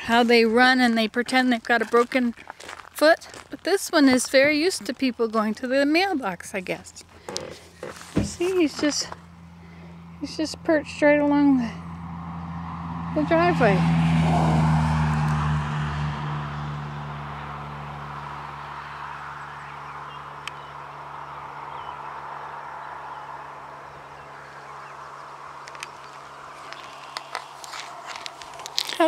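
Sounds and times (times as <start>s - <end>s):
vehicle engine hum: 0.0s - 29.0s.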